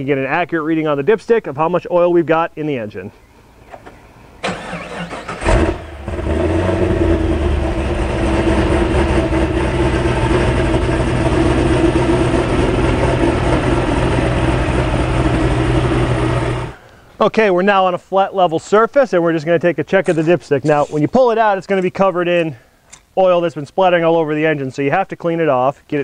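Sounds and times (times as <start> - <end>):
engine cranking and starting: 3.8 - 16.8
engine idling: 4.4 - 16.8.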